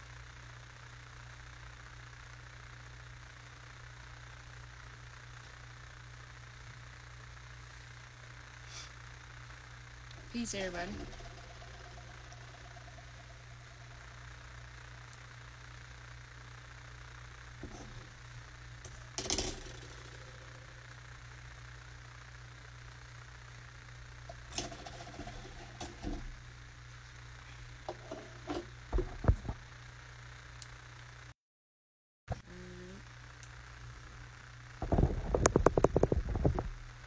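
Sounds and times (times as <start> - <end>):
low hum: 0.0 - 31.2.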